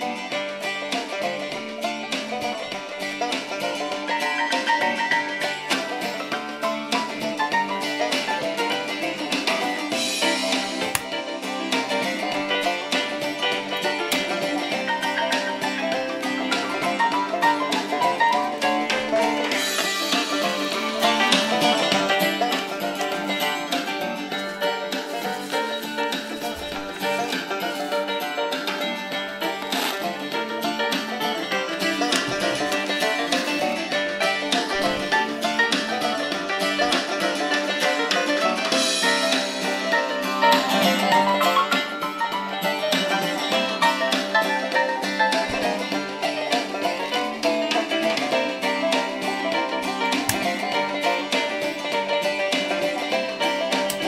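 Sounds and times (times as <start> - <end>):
music through small radio speaker: 0.0 - 54.0.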